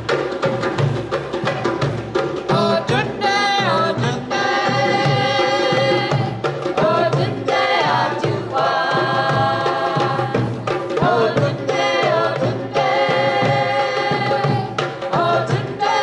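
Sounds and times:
hand drum rhythm: 0.0s - 16.0s
women singing together: 2.5s - 16.0s.

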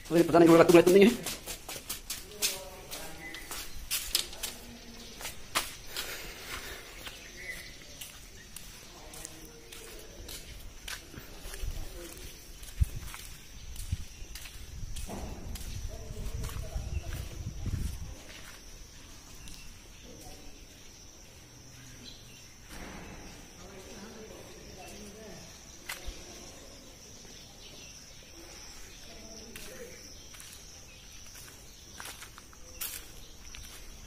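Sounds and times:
faint voices: 0.0s - 13.4s, 15.0s - 19.3s
footsteps: 0.0s - 34.0s.

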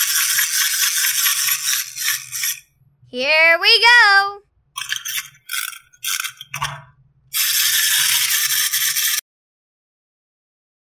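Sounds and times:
clockwork motor buzzing rattle: 0.0s - 2.7s, 4.8s - 6.7s, 7.3s - 9.2s
toy key being wound: 0.0s - 2.7s, 4.8s - 6.7s, 7.3s - 9.2s.

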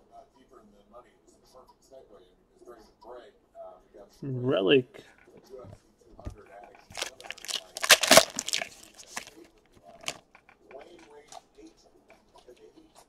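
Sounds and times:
foil pack tearing and crinkling: 6.9s - 9.4s, 10.0s - 10.2s
cards rustling: 6.9s - 10.2s.

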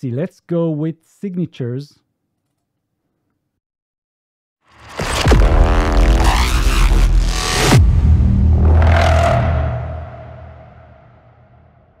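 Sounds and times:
deep sub-bass boom with falling pitch: 5.2s - 11.8s.

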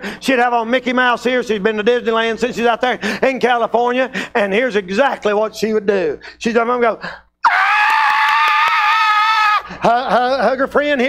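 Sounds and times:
man's falsetto scream: 7.4s - 9.7s.

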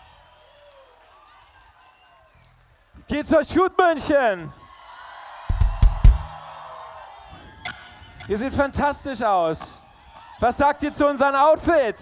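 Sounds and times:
band drums and bass hits: 5.5s - 6.4s.

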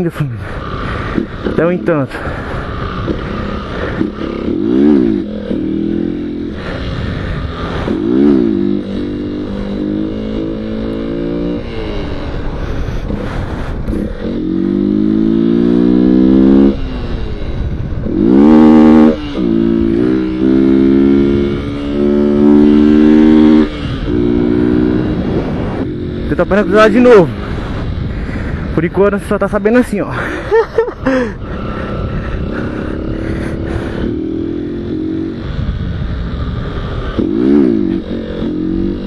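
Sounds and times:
motorcycle engine revving hard: 0.2s - 28.8s, 31.0s - 39.0s.

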